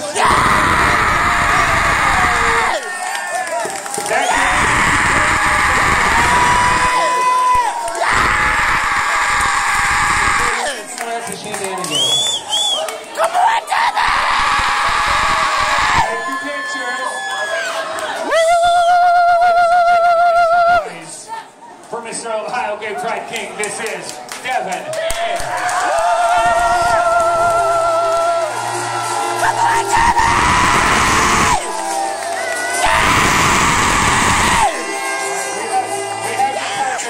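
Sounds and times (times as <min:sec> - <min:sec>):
audience cheering and screaming: 0:00.0 - 0:10.9, 0:11.9 - 0:20.9, 0:25.2 - 0:36.8
recorded music: 0:26.0 - 0:37.0.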